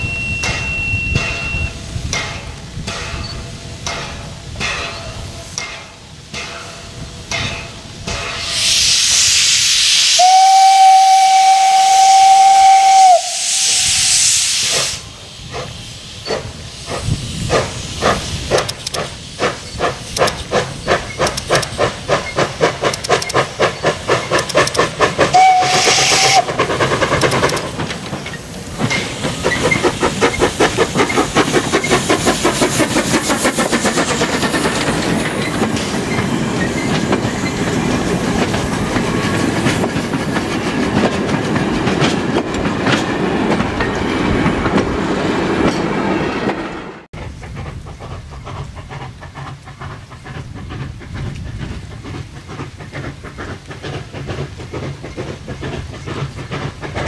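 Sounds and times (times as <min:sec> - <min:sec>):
train wheels clacking on rail joints: 0:00.0 - 0:08.6, 0:14.6 - 0:57.0
steam locomotive exhaust chuffing: 0:00.0 - 0:45.8, 0:47.1 - 0:57.0
steam whistle: 0:08.4 - 0:15.0, 0:25.3 - 0:26.6.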